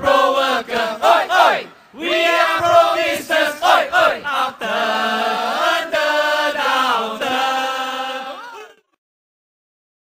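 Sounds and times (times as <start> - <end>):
group singing long held notes: 0.0 - 8.8.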